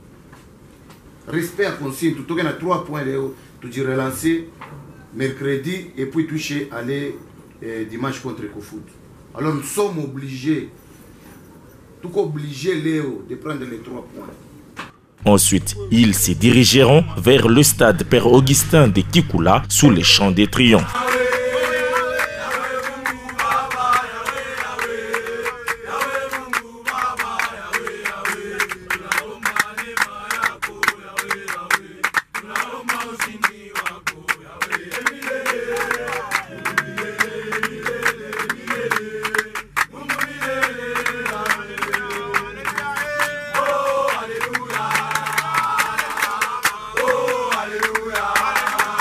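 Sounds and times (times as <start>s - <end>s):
rhythmic hand clapping: 15.5s - 49.0s
men singing a chant: 15.6s - 49.0s.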